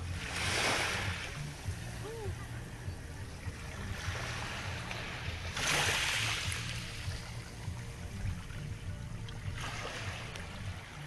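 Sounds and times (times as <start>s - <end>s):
small waves washing on shore: 0.0s - 11.0s.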